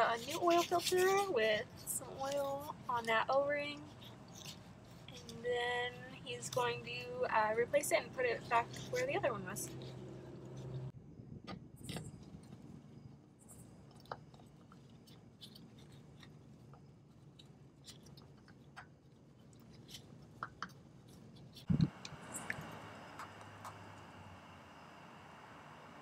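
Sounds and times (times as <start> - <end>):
oil filter screwing clicks and scraping: 3.9 - 5.4.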